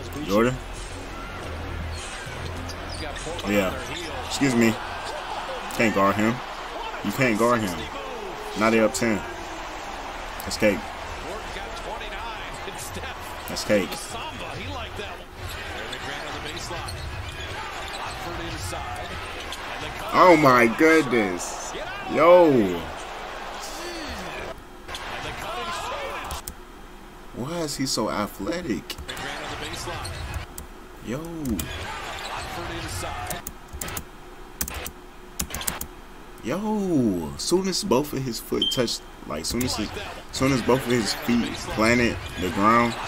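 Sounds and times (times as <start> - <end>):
arena noise: 0.0 - 43.0.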